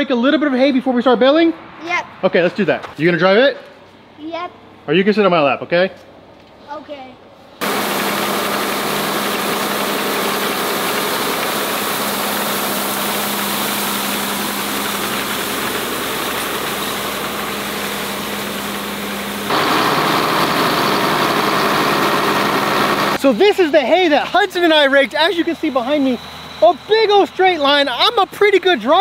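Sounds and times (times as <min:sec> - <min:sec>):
tractor engine running: 0:07.6 - 0:23.4.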